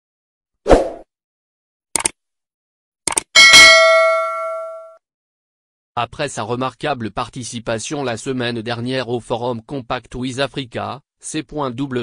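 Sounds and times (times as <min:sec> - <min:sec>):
short clicks: 0:02.0 - 0:02.2, 0:03.1 - 0:03.3
bright bell ding: 0:03.4 - 0:05.0.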